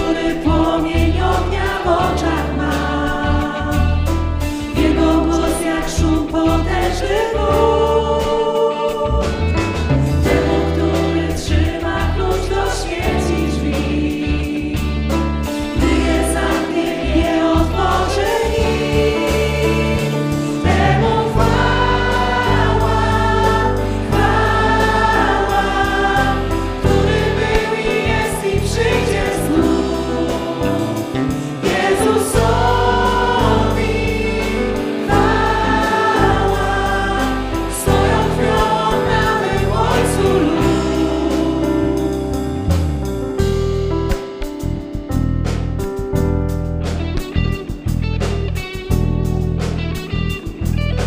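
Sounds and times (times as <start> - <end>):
women singing: 0.0 - 4.0, 4.7 - 9.5, 10.3 - 15.0, 15.8 - 42.3
drum kit: 0.0 - 51.0
guitar: 0.0 - 51.0
keyboard: 0.0 - 51.0.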